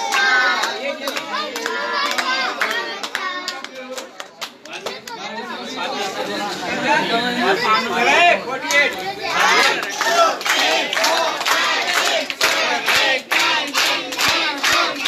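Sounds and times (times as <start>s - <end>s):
hand claps: 0.0s - 5.2s, 9.6s - 15.0s
children talking and calling out: 4.7s - 6.8s, 7.4s - 9.9s.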